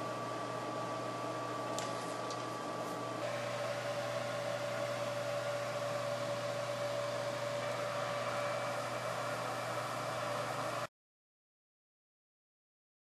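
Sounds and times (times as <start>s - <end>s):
hair dryer humming: 2.5s - 10.9s.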